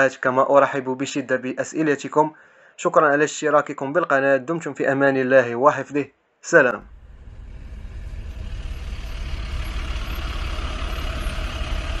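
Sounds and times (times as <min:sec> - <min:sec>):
vehicle engine rumbling: 0:06.8 - 0:12.0.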